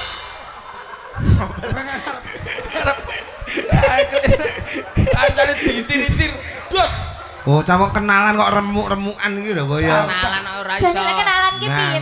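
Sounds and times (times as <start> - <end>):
people laughing: 0.0 - 12.0.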